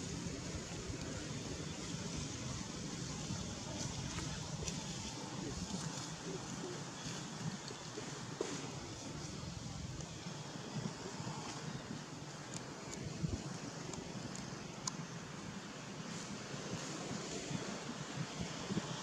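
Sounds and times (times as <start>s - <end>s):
wind: 0.0s - 19.0s.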